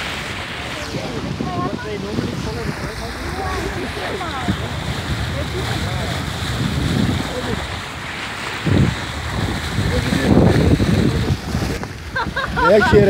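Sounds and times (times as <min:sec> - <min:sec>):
seawater rushing along boat: 0:00.0 - 0:13.0
wind buffeting microphone: 0:00.0 - 0:13.0.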